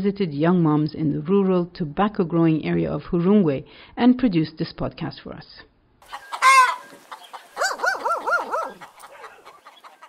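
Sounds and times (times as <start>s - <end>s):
dog yelping: 7.6s - 9.7s.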